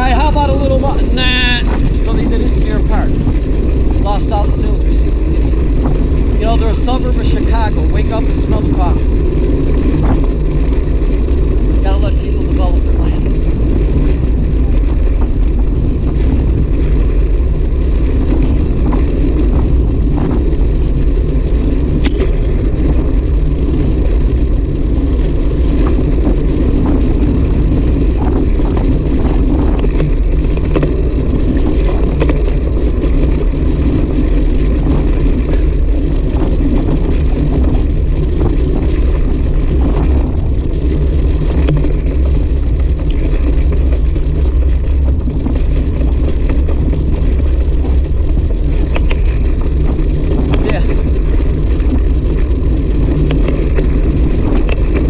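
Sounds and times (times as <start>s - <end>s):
bicycle tyres rolling on asphalt: 0.0s - 55.0s
wind rush on microphone: 0.0s - 55.0s.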